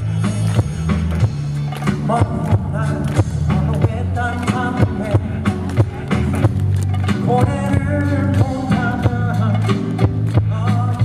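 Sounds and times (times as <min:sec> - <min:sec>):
bass line: 0:00.0 - 0:11.0
drum beat: 0:00.0 - 0:11.0
live band playing pop ballad: 0:00.0 - 0:11.0
man singing: 0:01.9 - 0:06.4, 0:07.0 - 0:11.0.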